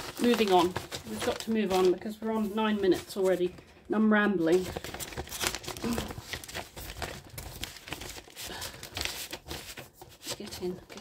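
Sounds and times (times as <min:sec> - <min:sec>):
plastic packaging crinkling: 0:00.0 - 0:03.7, 0:04.4 - 0:11.0.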